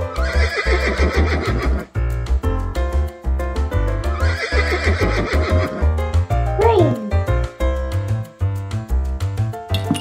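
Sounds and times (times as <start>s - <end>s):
horse whinnying: 0.1s - 1.9s, 4.2s - 5.8s.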